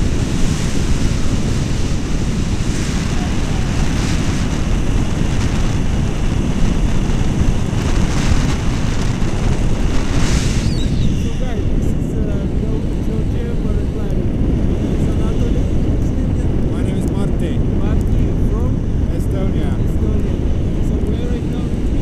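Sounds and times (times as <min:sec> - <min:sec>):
wind buffeting microphone: 0:00.0 - 0:22.0
faint voices: 0:03.0 - 0:04.2.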